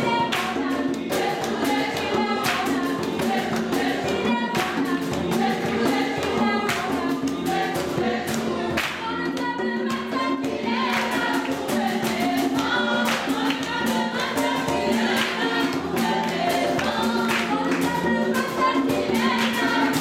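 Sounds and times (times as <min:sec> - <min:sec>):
group singing gospel music: 0:00.0 - 0:20.0.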